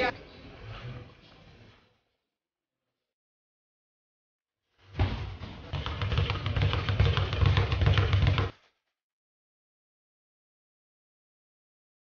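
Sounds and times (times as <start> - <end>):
speed bag being punched: 4.9 - 8.6.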